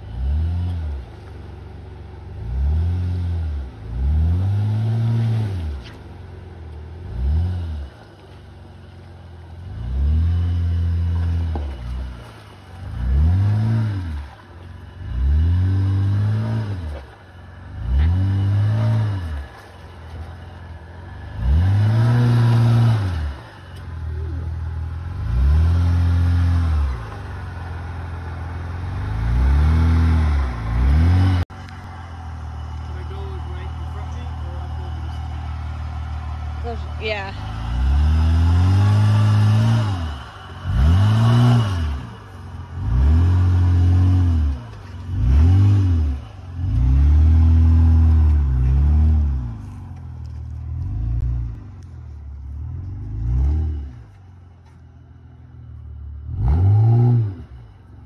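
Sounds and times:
truck engine revving: 0.0 - 58.0
engine idling: 26.2 - 43.0, 46.0 - 53.2.

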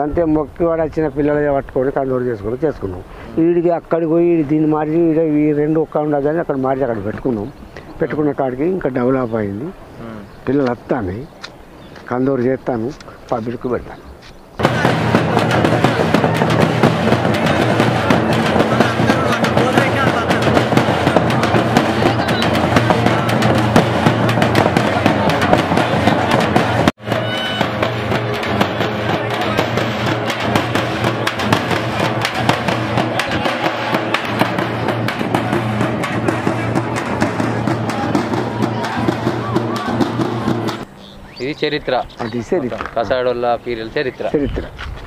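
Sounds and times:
frame drums beaten with sticks: 14.6 - 40.9.

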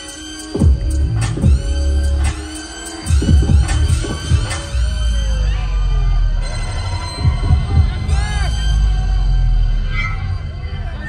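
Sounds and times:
hip-hop backing track: 0.0 - 11.0
heavy low bass thumps: 0.6 - 2.4, 3.1 - 9.8.

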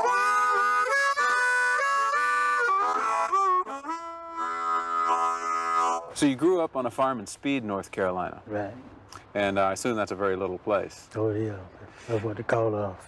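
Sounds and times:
blues harmonica: 0.0 - 6.2.

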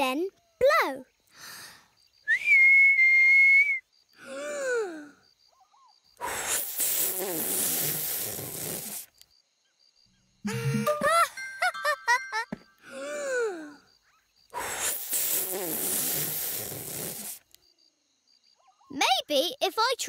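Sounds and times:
steady whistle: 2.3 - 3.9
breathy blowing rush of air: 6.2 - 9.1, 14.6 - 17.4.

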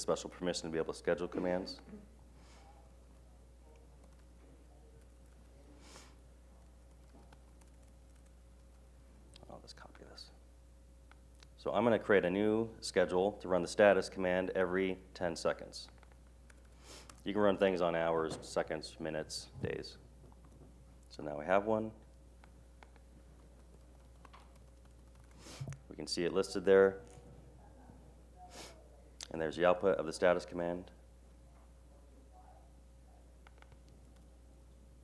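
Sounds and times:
laptop keyboard clicks: 23.6 - 25.4, 33.4 - 34.2.

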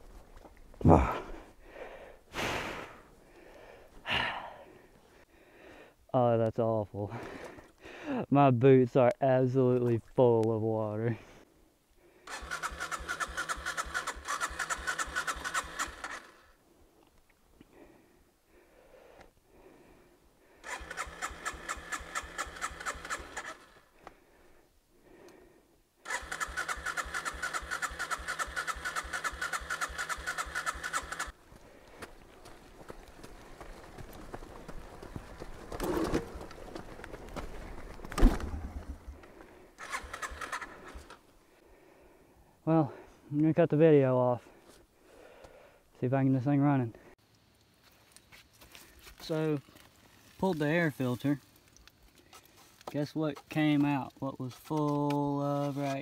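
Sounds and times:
electric starter cranking engine: 12.3 - 16.5, 20.6 - 23.8, 26.0 - 31.4, 39.8 - 41.2.

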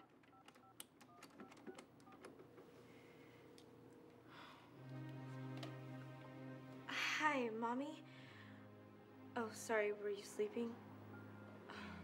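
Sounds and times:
faint steady tone: 8.0 - 12.0.

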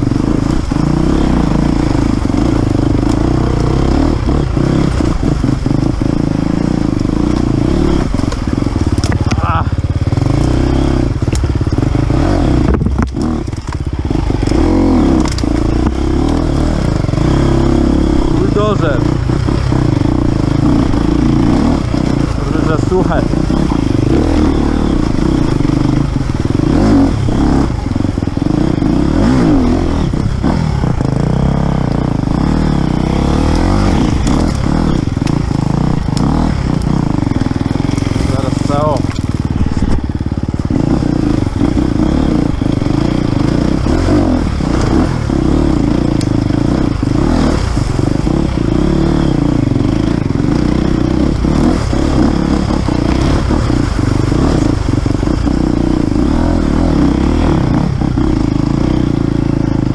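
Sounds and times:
motorcycle engine at low revs: 0.0 - 59.9.

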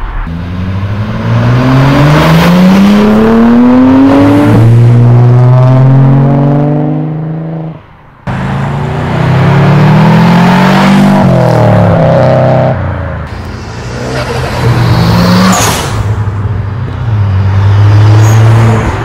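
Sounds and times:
car engine accelerating hard: 0.3 - 7.7, 8.3 - 16.2
car engine running steadily: 13.1 - 17.1.

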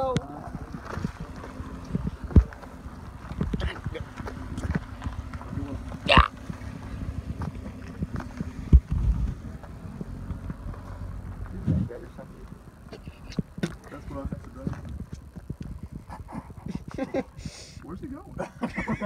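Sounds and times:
footsteps crunching on gravel: 0.2 - 16.1.

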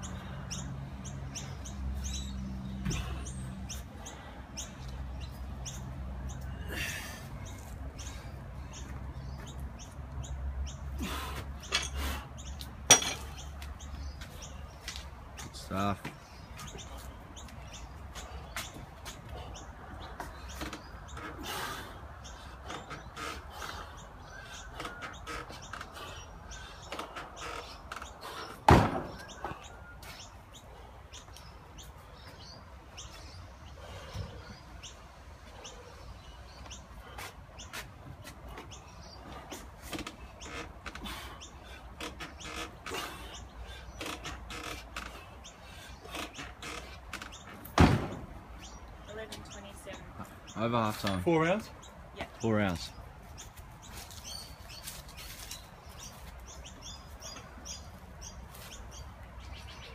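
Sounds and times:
sharp thump: 28.7 - 29.2, 47.8 - 48.3.

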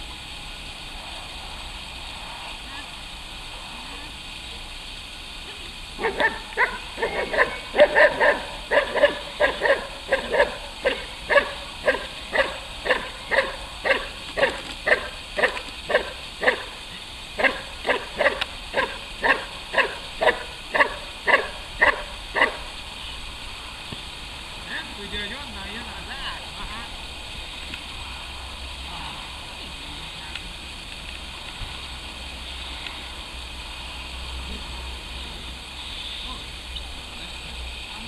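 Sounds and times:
dog barking: 6.0 - 16.7, 17.4 - 22.6.

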